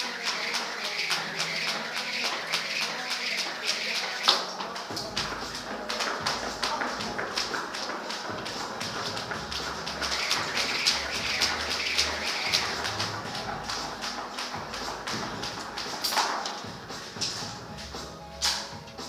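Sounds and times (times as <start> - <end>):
jump rope slapping rubber floor: 0.0 - 17.6, 18.4 - 18.7.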